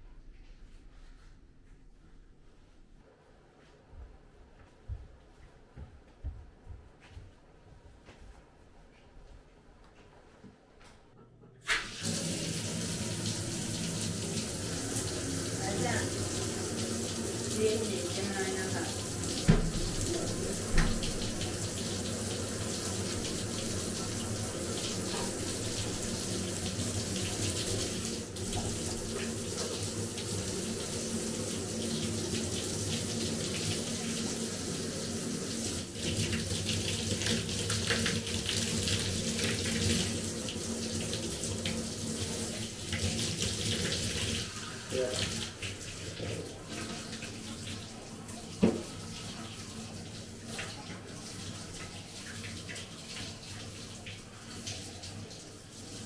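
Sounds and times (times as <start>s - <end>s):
water running from shower head: 11.7s - 56.0s.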